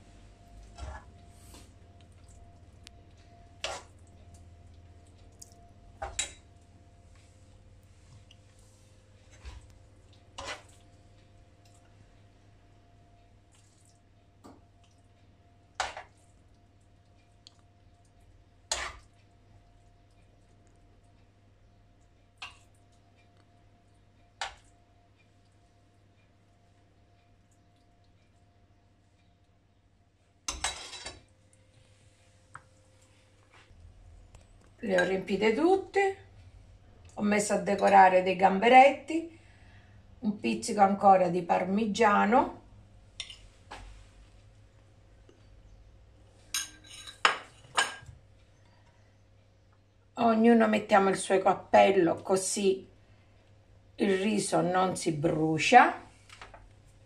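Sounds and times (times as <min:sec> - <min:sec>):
faint steady hum: 0:00.0 - 0:57.0.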